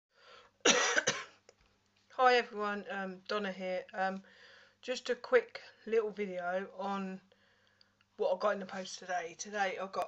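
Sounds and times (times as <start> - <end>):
faint breath: 0.1 - 0.6, 4.2 - 4.8, 7.3 - 8.0
woman coughing: 0.7 - 1.4.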